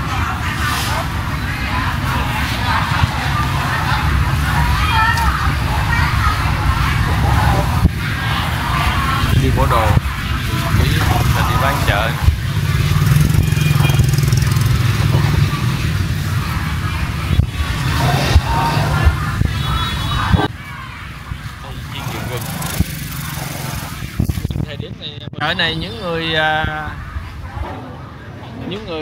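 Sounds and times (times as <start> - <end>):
vendors and shoppers talking: 0.0 - 29.0.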